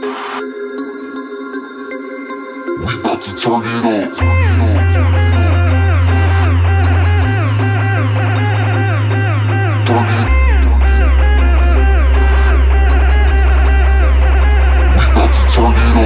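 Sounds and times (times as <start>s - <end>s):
electronic dance music: 0.0s - 1.2s, 2.1s - 16.0s
deep bass note: 4.2s - 16.0s
sliding synth notes: 4.2s - 16.0s.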